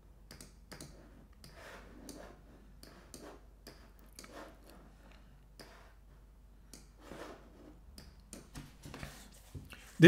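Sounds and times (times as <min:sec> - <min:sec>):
mouse and keyboard clicks: 0:00.3 - 0:02.2.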